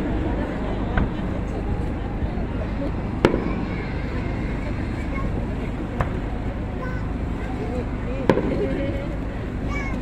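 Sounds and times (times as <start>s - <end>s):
crowd murmur: 0.0s - 10.0s
firework bang: 3.2s - 3.8s, 8.3s - 8.7s.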